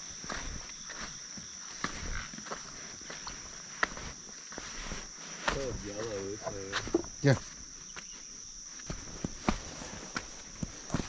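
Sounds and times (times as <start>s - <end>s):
crickets droning: 0.0s - 11.0s
footsteps on rock and dirt: 0.0s - 11.0s.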